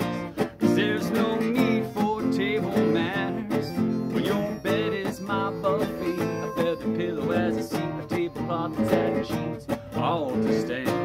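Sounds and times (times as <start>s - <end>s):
harmonica wavering melody: 0.0s - 10.2s
strummed acoustic guitar: 0.0s - 11.0s.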